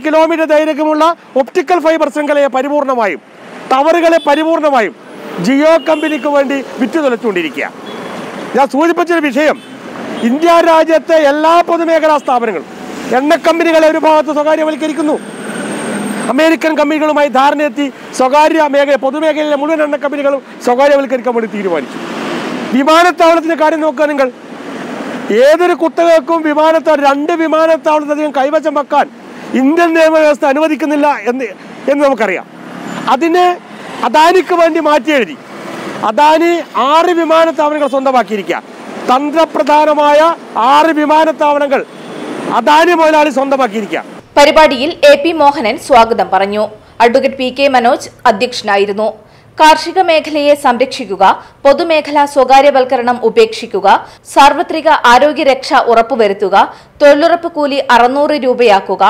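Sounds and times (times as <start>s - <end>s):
man speaking: 0.0s - 7.8s, 8.5s - 9.6s, 10.2s - 15.2s, 16.3s - 21.9s, 22.7s - 24.4s, 25.3s - 35.4s, 36.0s - 41.9s, 42.5s - 50.2s
road traffic noise: 0.0s - 59.0s.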